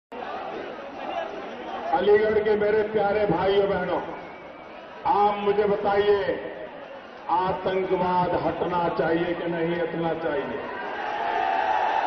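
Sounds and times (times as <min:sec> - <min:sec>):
crowd talking and calling out: 0:00.1 - 0:12.0.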